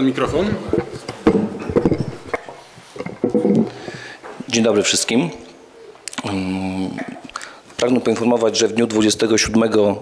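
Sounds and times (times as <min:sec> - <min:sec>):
microphone handling bumps and rubbing: 0:00.3 - 0:03.8.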